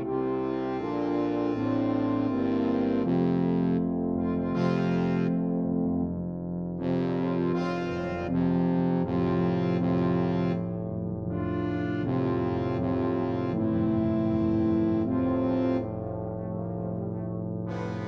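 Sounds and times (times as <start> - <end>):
orchestral music with brass chords: 0.0 - 18.0.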